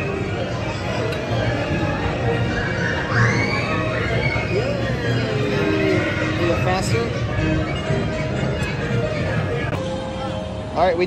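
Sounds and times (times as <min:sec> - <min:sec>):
crowd voices: 0:00.0 - 0:11.0
fairground ride music: 0:00.0 - 0:11.0
high squeal: 0:02.4 - 0:07.0.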